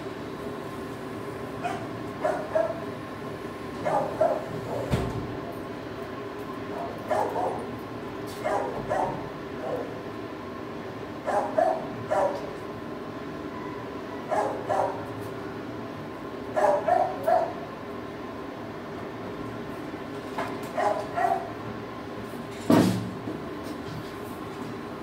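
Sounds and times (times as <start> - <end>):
dog barking: 1.6 - 2.8, 3.8 - 4.9, 6.7 - 7.7, 8.4 - 10.0, 11.2 - 12.5, 14.3 - 15.1, 16.6 - 17.6, 20.8 - 21.5.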